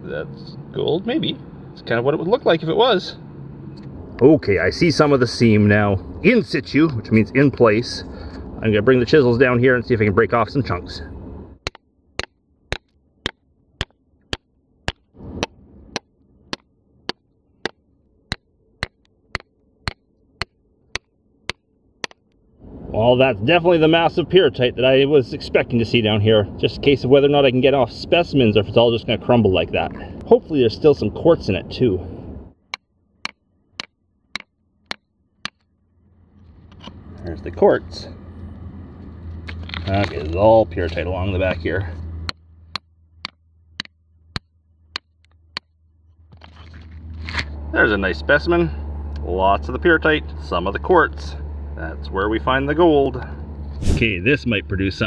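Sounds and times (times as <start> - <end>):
hammer striking chisel into rock: 11.6 - 22.2.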